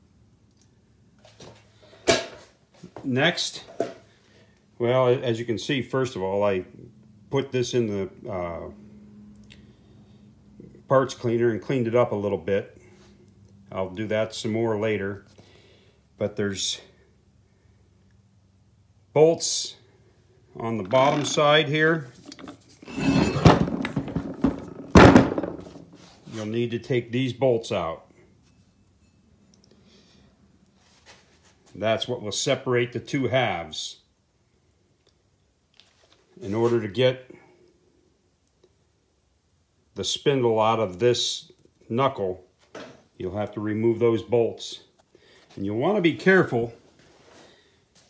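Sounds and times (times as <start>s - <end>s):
metal scraping on wood: 20.7s - 26.5s
heavy metal part thud: 22.2s - 25.9s.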